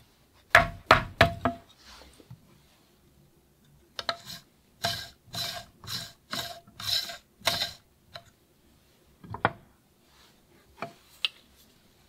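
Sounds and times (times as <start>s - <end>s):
tool scraping coffee grounds: 4.1s - 7.8s.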